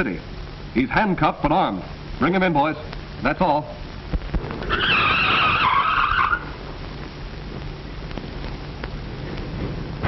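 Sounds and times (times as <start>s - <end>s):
car tyres screeching: 4.6s - 6.6s.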